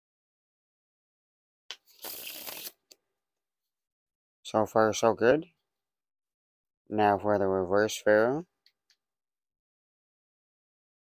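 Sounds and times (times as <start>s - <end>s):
playing cards rustling: 1.7s - 2.9s.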